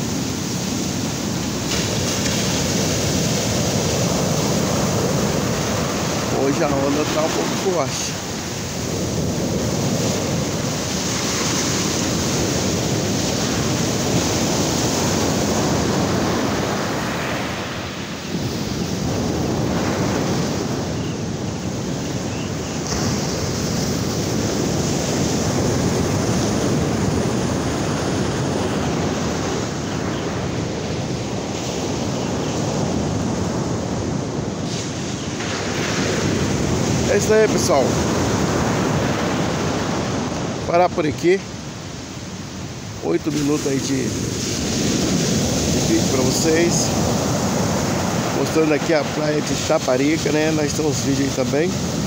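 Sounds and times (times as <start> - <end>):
ocean surf breaking: 0.0 - 52.0
wind on microphone: 0.0 - 52.0.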